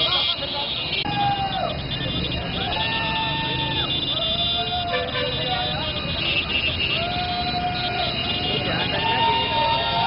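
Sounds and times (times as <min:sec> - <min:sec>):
motorcycle engines: 0:00.0 - 0:10.0.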